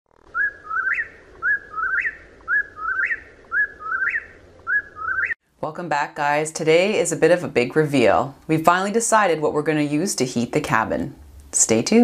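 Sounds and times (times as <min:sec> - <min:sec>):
whip-poor-will whistled song: 0:00.4 - 0:05.4.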